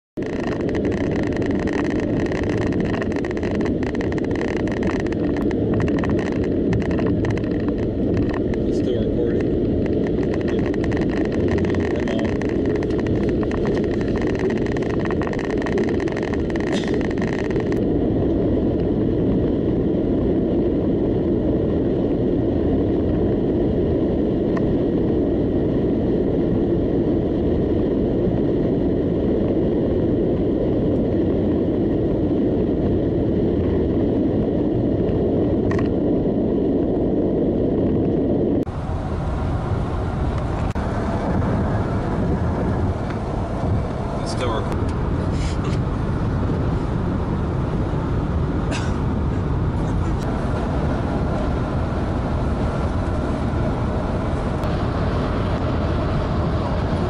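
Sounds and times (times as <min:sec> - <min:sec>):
tyre and engine rumble: 0:00.2 - 0:57.0
wind noise: 0:00.2 - 0:57.0.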